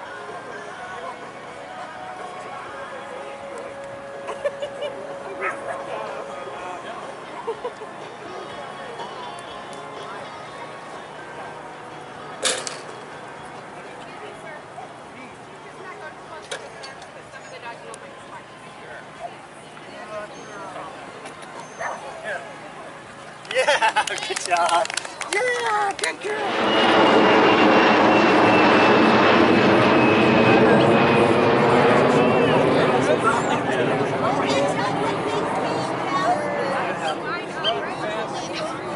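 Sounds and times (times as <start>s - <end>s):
jet aircraft passing overhead: 0.0s - 19.4s, 25.0s - 38.9s.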